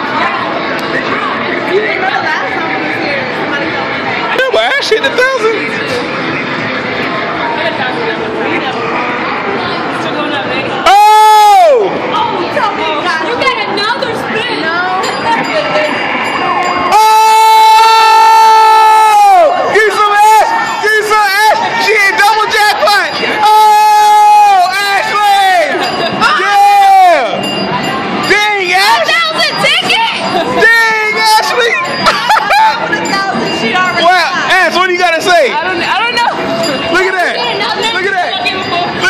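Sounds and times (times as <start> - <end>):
excited chatter of voices: 0.0 - 39.0.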